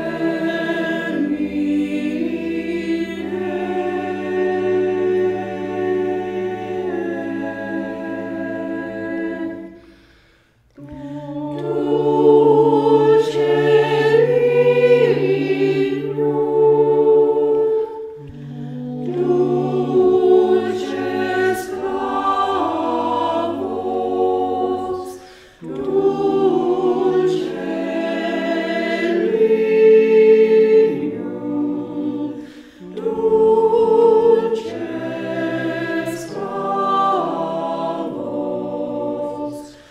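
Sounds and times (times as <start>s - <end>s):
choir singing unaccompanied: 0.0s - 10.0s, 10.7s - 39.9s.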